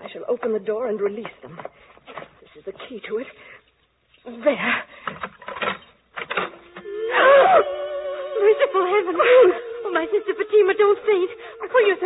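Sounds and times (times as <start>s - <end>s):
loud cry: 6.7s - 12.0s.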